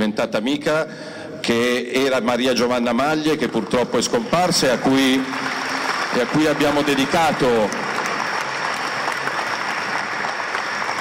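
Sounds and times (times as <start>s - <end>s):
audience applauding: 3.4s - 11.0s.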